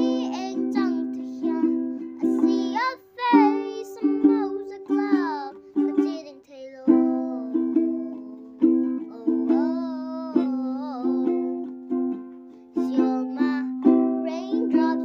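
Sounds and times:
girl singing: 0:00.0 - 0:15.0
ukulele strummed chords: 0:00.0 - 0:15.0.

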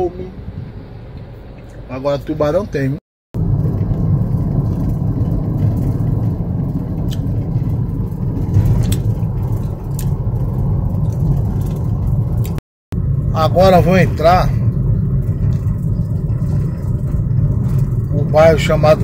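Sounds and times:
car engine and tyres rumbling: 0:00.0 - 0:19.0.

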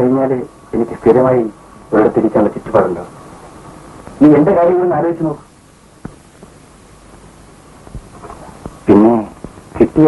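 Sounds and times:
film soundtrack hiss: 0:00.0 - 0:10.0.

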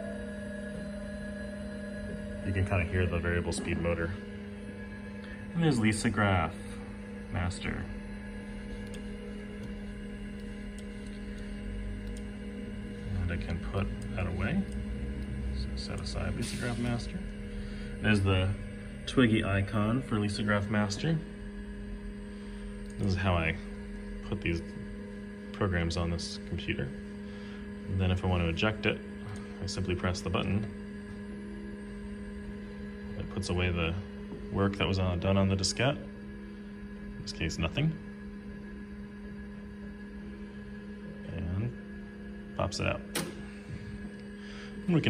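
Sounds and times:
computer and hard drive humming: 0:00.0 - 0:45.0
faint steady tones: 0:00.0 - 0:45.0.

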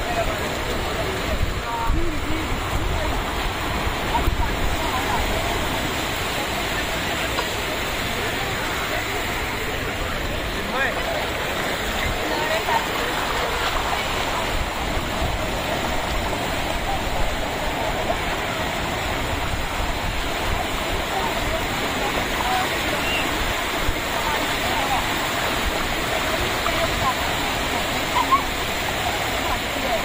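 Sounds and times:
surf washing over sand: 0:00.0 - 0:30.0.

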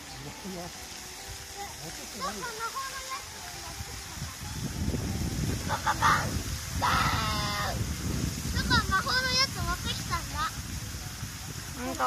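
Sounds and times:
fountain water jets splashing: 0:00.0 - 0:12.0.

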